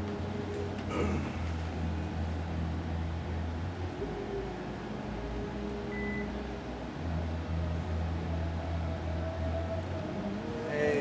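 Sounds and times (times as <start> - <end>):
mechanical room hum: 0.0 - 11.0.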